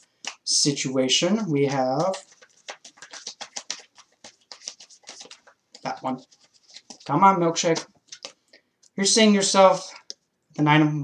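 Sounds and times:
cards being shuffled: 1.3 - 8.5.

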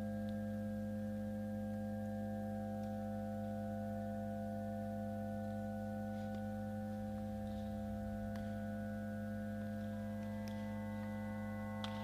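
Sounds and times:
sustained musical drone: 5.0 - 12.0.

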